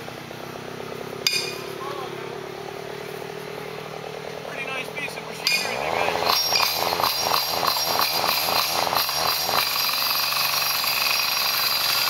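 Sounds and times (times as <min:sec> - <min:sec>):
small engine running steadily: 0:00.0 - 0:12.0
sharp metallic clink: 0:01.2 - 0:01.8, 0:05.4 - 0:09.9.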